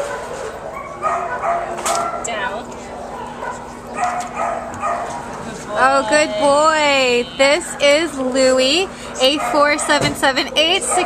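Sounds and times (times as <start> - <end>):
dogs yipping and barking: 0.0 - 2.4, 3.0 - 5.3, 9.3 - 11.0
indistinct voices: 5.3 - 11.0.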